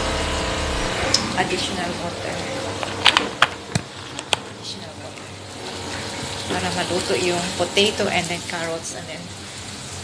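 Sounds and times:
stew simmering in a wok: 3.6 - 10.0.

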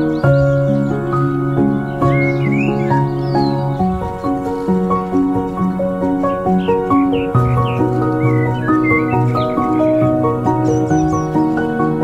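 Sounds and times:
calm instrumental music: 0.0 - 12.0.

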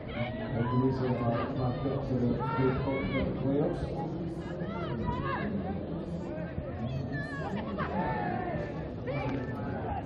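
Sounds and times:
people calling and chattering: 0.0 - 10.0.

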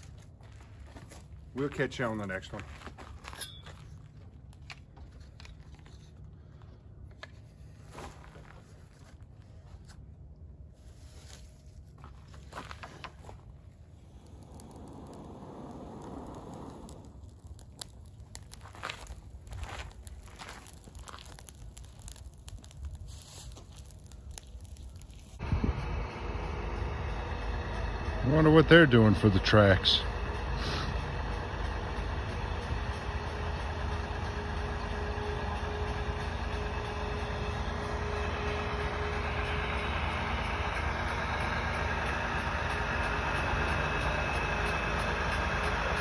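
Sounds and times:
low engine rumble: 0.0 - 46.0
soft rushing swell: 13.7 - 18.4
dry leaves crunching: 16.9 - 25.4.

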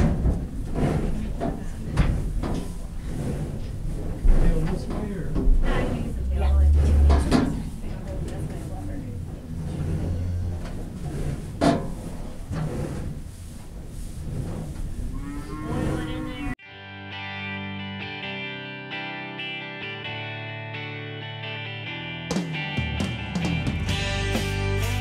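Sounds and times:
barn noise: 0.0 - 16.6
cow mooing: 5.7 - 7.8, 9.2 - 11.0, 15.1 - 16.6
guitar music: 16.3 - 25.0.

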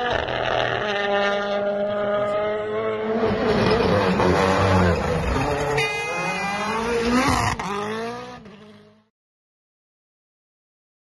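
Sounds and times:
rally car engine revving: 0.0 - 9.1.

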